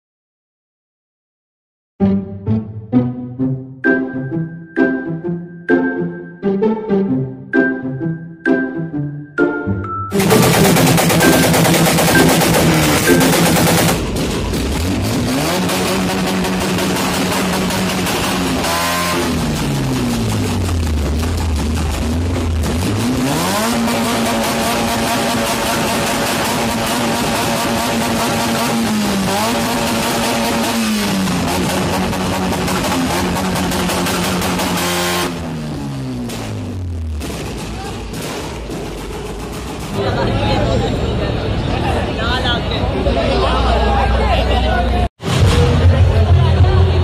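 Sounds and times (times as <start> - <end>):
car engines revving: 10.1 - 47.0.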